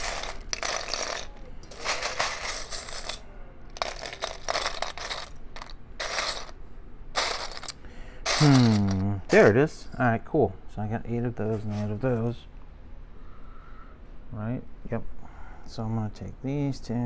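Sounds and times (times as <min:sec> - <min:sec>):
plastic bricks clattering: 0:00.0 - 0:03.2, 0:03.8 - 0:06.6, 0:07.2 - 0:09.1.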